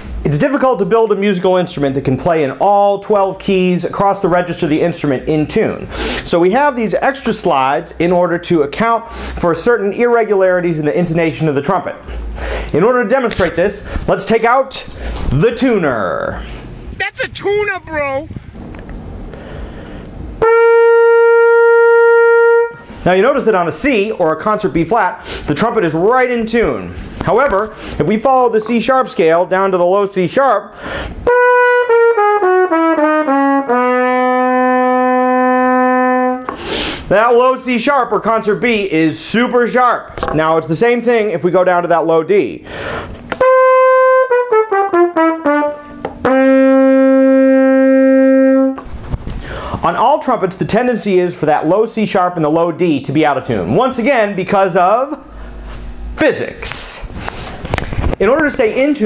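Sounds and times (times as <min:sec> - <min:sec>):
trumpet long steady note: 0:20.4 - 0:23.0, 0:31.2 - 0:36.5, 0:43.4 - 0:48.8.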